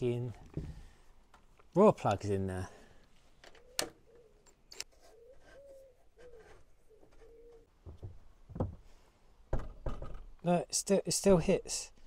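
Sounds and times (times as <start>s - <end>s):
pigeon cooing: 3.6s - 7.7s.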